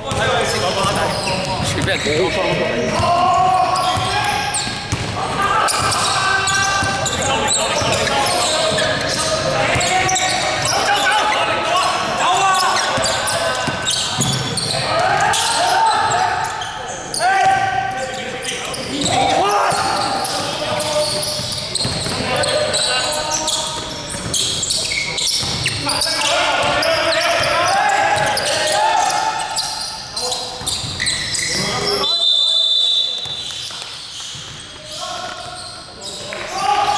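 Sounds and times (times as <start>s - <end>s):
players shouting and chatting: 0.0s - 36.9s
basketball bouncing on hardwood floor: 4.9s - 5.2s, 21.8s - 22.2s.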